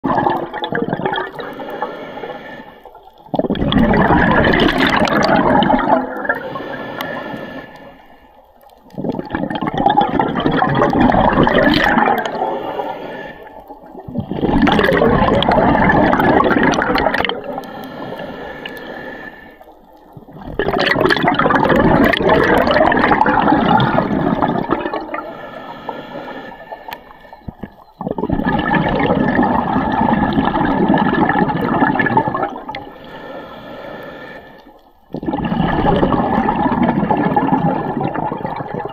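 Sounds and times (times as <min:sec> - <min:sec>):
underwater breath bubbles gurgling: 0:00.0 - 0:38.9.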